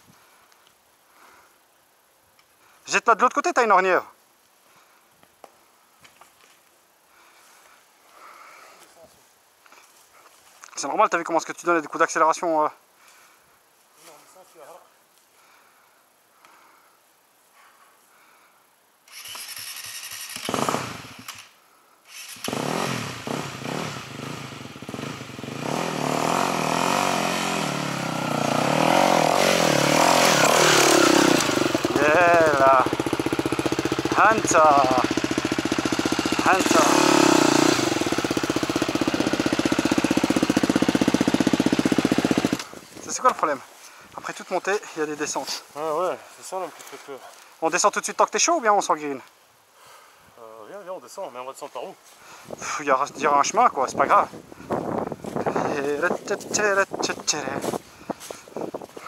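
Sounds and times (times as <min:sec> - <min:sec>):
dirt bike engine revving: 0:19.2 - 0:21.5, 0:22.1 - 0:42.7.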